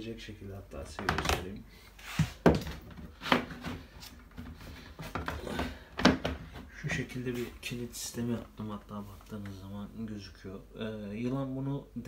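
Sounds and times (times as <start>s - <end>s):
rubbing and rustling: 0.9s - 9.6s.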